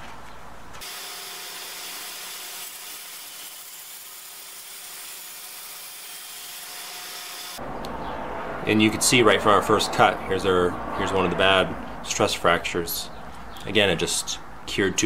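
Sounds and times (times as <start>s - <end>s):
bandsaw cutting resin: 0.8s - 7.6s.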